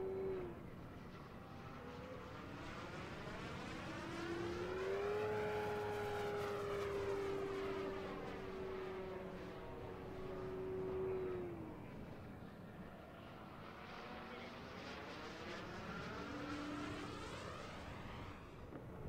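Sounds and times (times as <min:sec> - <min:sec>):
model plane motor and propeller whine: 0:00.0 - 0:19.0.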